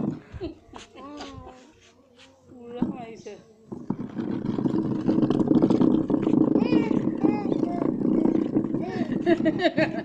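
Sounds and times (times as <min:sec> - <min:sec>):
plastic chair scraping on concrete: 0:02.8 - 0:10.0.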